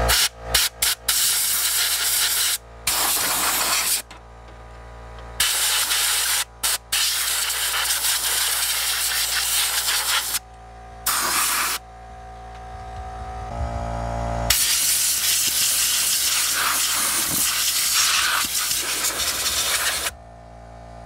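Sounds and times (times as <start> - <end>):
compressed air blasts hissing: 0.0 - 4.1, 5.4 - 10.4, 11.0 - 11.8, 14.5 - 20.1.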